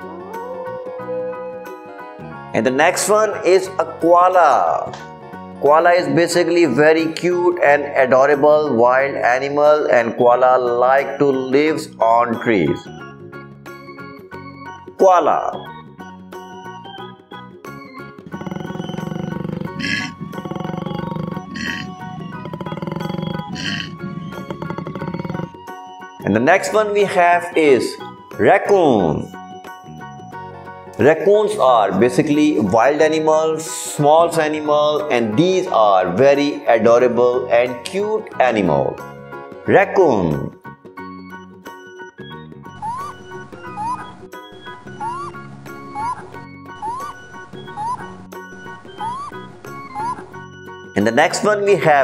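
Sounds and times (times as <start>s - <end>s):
background music: 0.0s - 52.0s
short rising animal calls: 18.2s - 25.8s
koala hissing: 18.2s - 25.9s
koala bellowing grunts: 18.3s - 25.6s.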